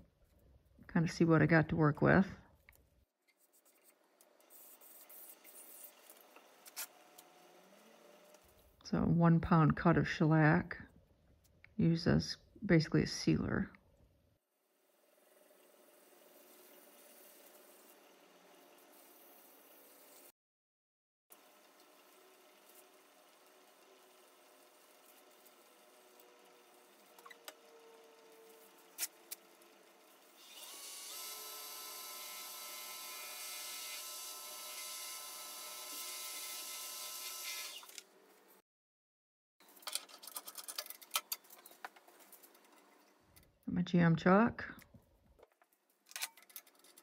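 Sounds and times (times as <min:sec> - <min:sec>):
electric motor whine: 0:30.2 - 0:38.0.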